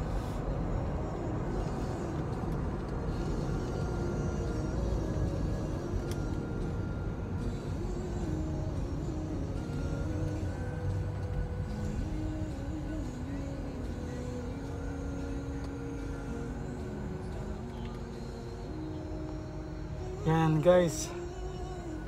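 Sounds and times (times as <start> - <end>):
car cabin road and engine rumble: 0.0 - 22.0.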